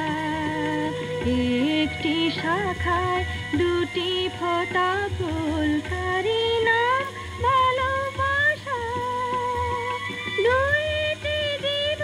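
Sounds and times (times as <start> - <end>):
rhythmic accompaniment: 0.0 - 12.0
woman singing: 0.0 - 12.0.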